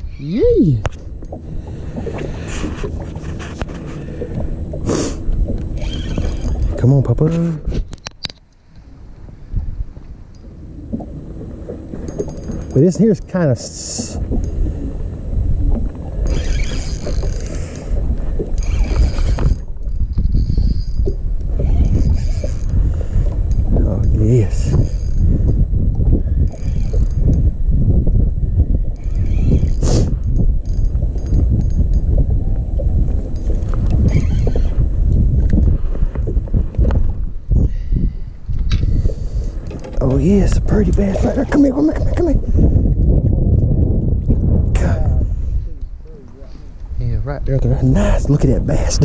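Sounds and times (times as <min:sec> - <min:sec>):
wind rumble on microphone: 0:00.0 - 0:49.0
fishing reel cranking: 0:05.7 - 0:06.8, 0:16.2 - 0:17.9, 0:18.5 - 0:22.8, 0:23.5 - 0:25.6, 0:26.4 - 0:27.4, 0:28.9 - 0:32.1, 0:33.4 - 0:34.8
sharp rasping noises: 0:16.2 - 0:17.8, 0:29.0 - 0:30.2.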